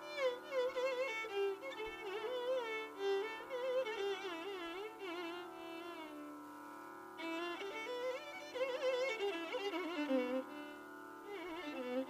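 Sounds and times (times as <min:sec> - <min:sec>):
violin with sliding ornamented phrases: 0:00.0 - 0:12.0.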